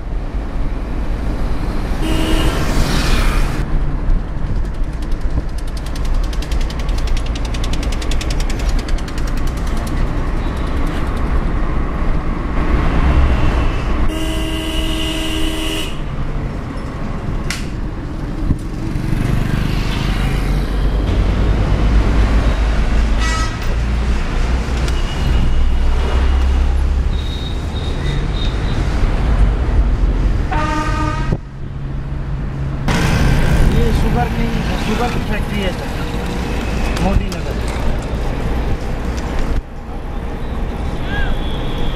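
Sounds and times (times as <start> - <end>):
vehicle rumble: 0.0 - 41.9
horns honking: 2.0 - 2.6, 14.1 - 16.1, 30.5 - 31.4.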